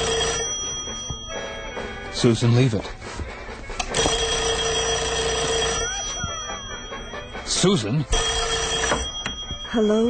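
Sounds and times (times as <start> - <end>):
telephone bell ringing: 0.0 - 2.2, 3.9 - 10.0.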